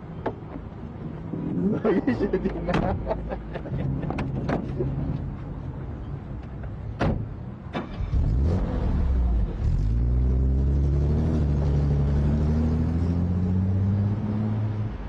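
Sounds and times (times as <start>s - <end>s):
car doors shutting: 7.0s - 8.3s
car engine revving as car pulls away: 7.8s - 15.0s.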